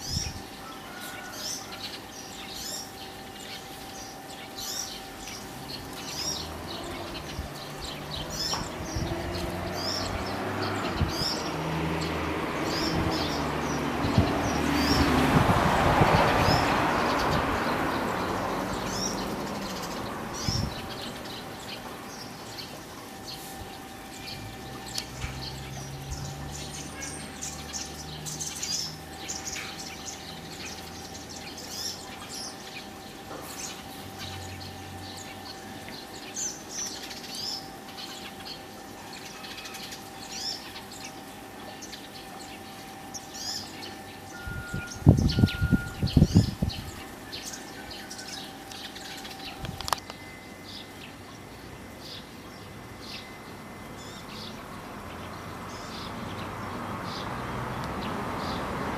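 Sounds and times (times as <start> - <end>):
small birds chirping: 0.0 - 58.9.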